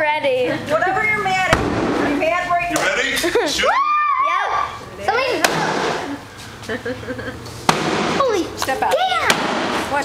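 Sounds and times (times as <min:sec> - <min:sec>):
people shouting and laughing: 0:02.8 - 0:07.4.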